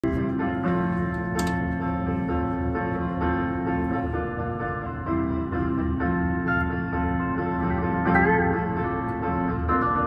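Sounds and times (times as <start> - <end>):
guitar loop with low pulse: 0.0 - 10.0.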